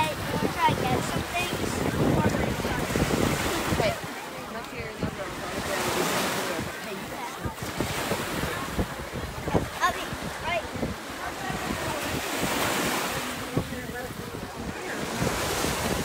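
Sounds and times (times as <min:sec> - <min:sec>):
surf washing onto beach: 0:00.0 - 0:16.0
wind buffeting microphone: 0:00.0 - 0:16.0.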